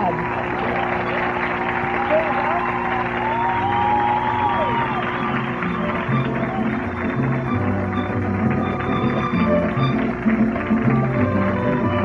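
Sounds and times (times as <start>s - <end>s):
mariachi band playing: 3.3s - 12.0s.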